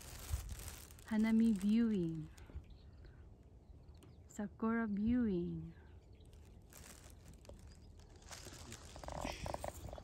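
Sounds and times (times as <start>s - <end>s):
low wind rumble: 0.0s - 10.0s.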